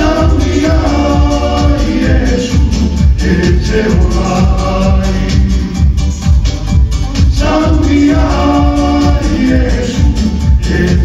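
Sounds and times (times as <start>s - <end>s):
voices singing in harmony: 0.0s - 6.0s, 7.2s - 11.0s
backing track with bass beat: 0.0s - 11.0s.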